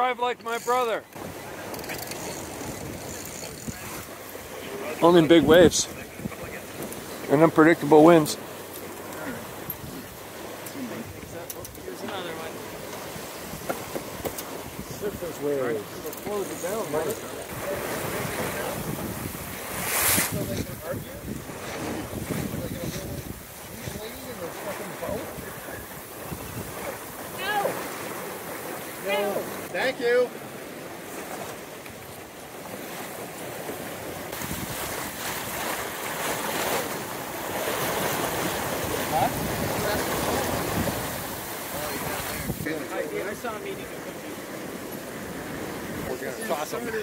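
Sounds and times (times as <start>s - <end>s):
rush of wind and water: 0.0s - 47.0s
wind buffeting microphone: 2.3s - 7.1s, 11.0s - 28.6s, 34.3s - 36.2s, 37.4s - 43.8s.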